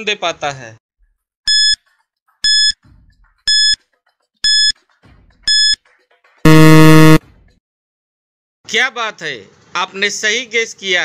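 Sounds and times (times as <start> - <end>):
low loud buzzer: 6.5 - 7.2
short high beeps: 6.5 - 7.2.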